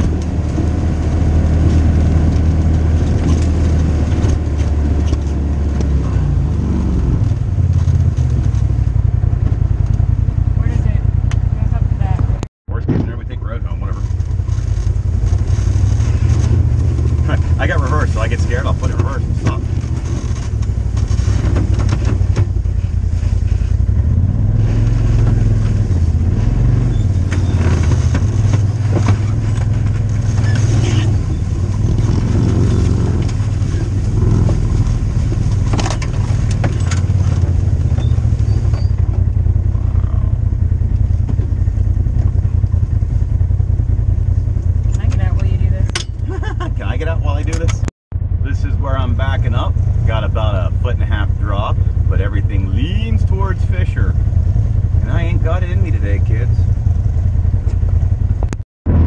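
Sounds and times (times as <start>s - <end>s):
off-road vehicle engine running: 0.0s - 59.0s
vehicle knocks and rattles: 14.0s - 24.2s, 25.1s - 46.5s.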